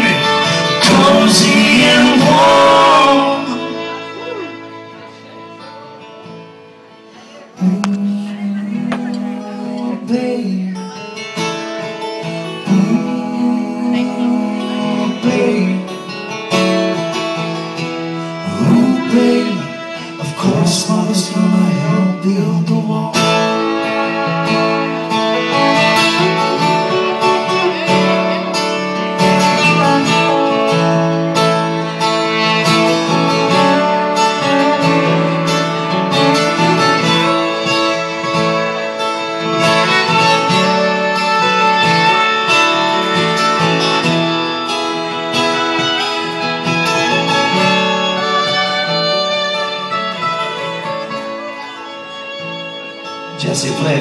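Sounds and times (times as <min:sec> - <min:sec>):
acoustic guitars playing: 0:00.0 - 0:54.0.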